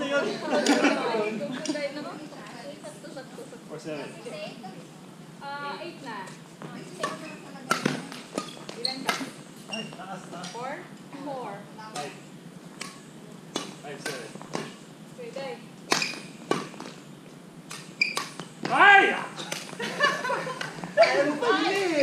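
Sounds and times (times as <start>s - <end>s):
people talking: 0.0s - 9.3s, 18.7s - 22.0s.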